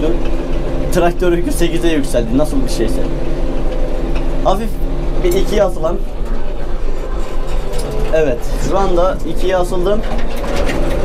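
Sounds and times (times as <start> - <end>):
tractor diesel engine rumbling: 0.0 - 11.0.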